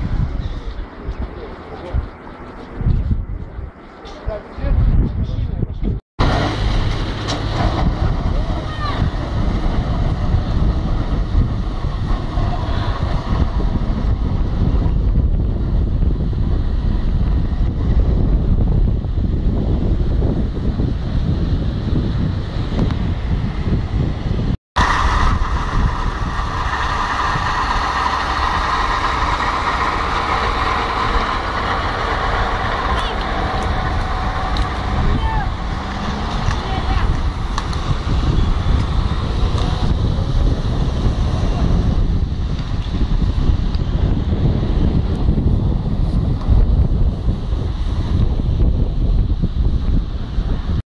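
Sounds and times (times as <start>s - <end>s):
bus driving past: 6.2s - 14.8s, 24.8s - 46.4s
cars driving on wet road: 6.2s - 14.9s, 24.8s - 50.8s.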